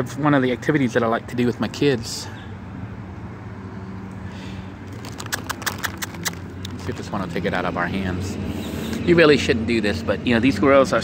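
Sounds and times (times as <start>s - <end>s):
dry leaves crackling underfoot: 4.8s - 7.4s.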